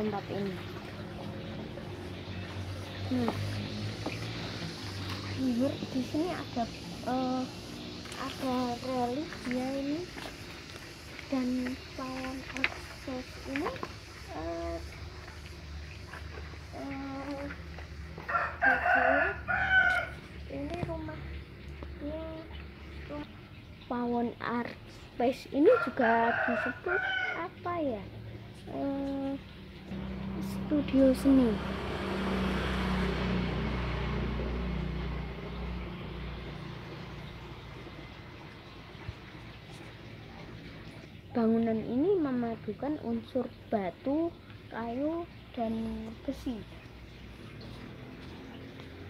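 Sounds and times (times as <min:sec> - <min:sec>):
vehicle engine humming: 0:00.0 - 0:49.0
rooster crowing: 0:18.2 - 0:20.2, 0:25.7 - 0:27.5.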